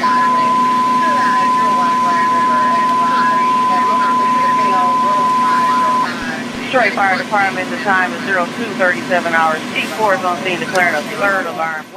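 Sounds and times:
faint radio talk: 0:00.0 - 0:11.9
high-pitched radio alert tone: 0:00.0 - 0:11.9.

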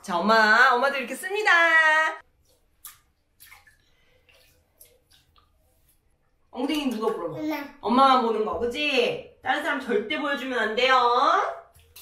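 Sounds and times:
woman's voice: 0:00.0 - 0:02.2, 0:06.6 - 0:11.7
bathwater splashing: 0:00.1 - 0:12.0.

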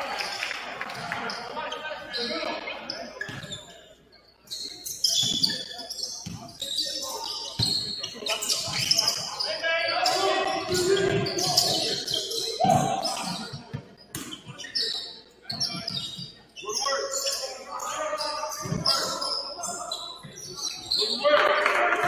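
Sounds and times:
players' voices: 0:00.0 - 0:22.0
shoe squeaks: 0:01.3 - 0:21.3.

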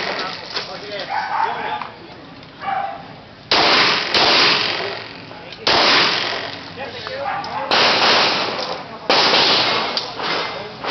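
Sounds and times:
loud pistol shots: 0:03.5 - 0:05.0, 0:05.6 - 0:06.5, 0:07.7 - 0:10.0.

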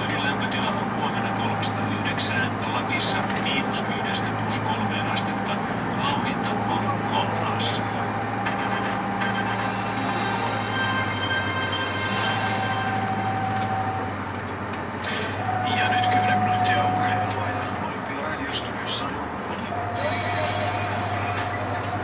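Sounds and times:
bus engine hum: 0:00.0 - 0:22.0
faint whining tone: 0:00.0 - 0:22.0.

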